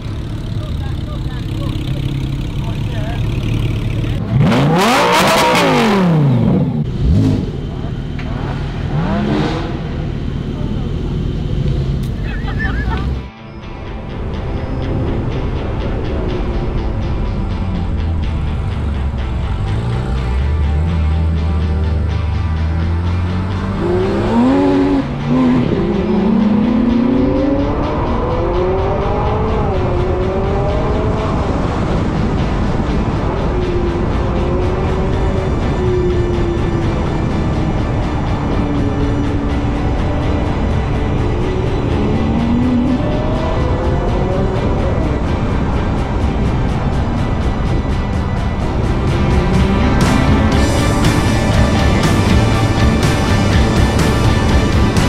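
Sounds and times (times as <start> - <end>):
sports car engine accelerating: 0.0 - 13.3, 14.6 - 55.0.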